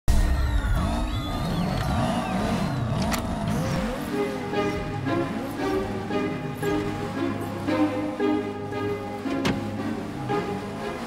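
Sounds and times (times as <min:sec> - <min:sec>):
car engine revving: 0:00.7 - 0:06.0
music playing: 0:03.5 - 0:11.0.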